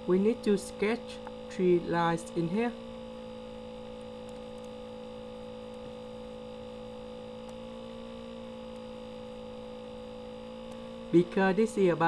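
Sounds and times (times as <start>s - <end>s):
electrical hum with two tones: 0.0s - 12.0s.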